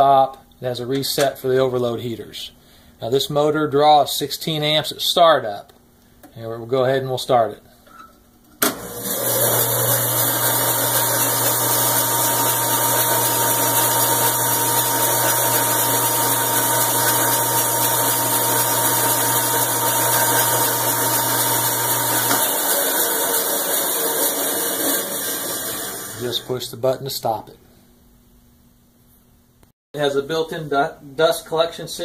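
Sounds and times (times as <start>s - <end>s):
electric motor hum: 8.7s - 26.6s
band saw whirring: 8.7s - 26.7s.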